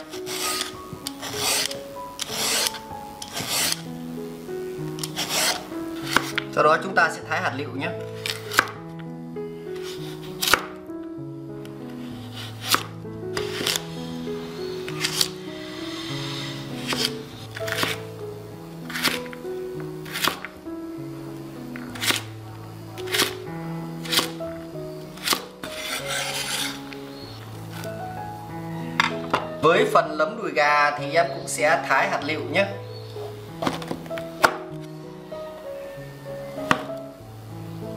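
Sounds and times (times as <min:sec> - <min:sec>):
knife scraping board: 0:00.0 - 0:03.8, 0:05.0 - 0:06.4, 0:12.0 - 0:18.0, 0:18.9 - 0:19.3, 0:20.0 - 0:20.5, 0:24.0 - 0:24.4, 0:25.2 - 0:27.9
background music: 0:00.0 - 0:37.9
knife chopping on cutting board: 0:17.7 - 0:18.0, 0:36.7 - 0:36.9.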